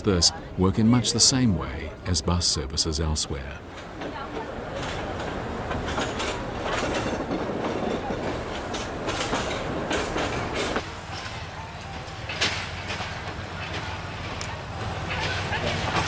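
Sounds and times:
train running on rails: 0.0s - 16.0s.

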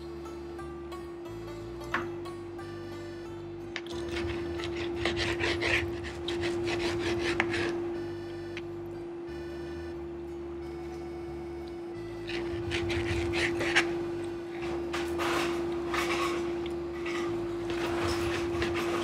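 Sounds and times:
background music: 0.0s - 14.8s
knife sawing through meat: 3.9s - 7.9s, 12.2s - 14.0s, 17.7s - 19.0s
knife scraping plate: 4.0s - 7.8s, 12.2s - 14.0s, 15.1s - 19.0s.

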